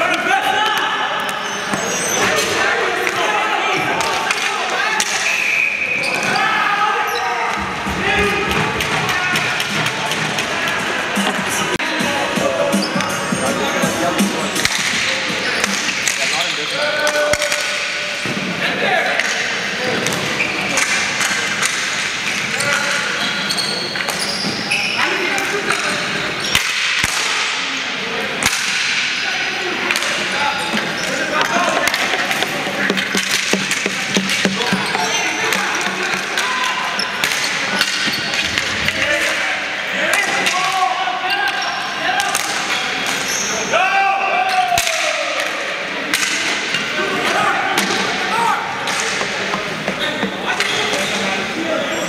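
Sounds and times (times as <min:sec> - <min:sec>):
hockey sticks clacking: 0:00.7 - 0:05.4, 0:07.5 - 0:11.8, 0:12.9 - 0:18.4, 0:19.1 - 0:24.7, 0:25.3 - 0:27.6, 0:28.4 - 0:29.2, 0:29.8 - 0:43.7, 0:44.7 - 0:52.0.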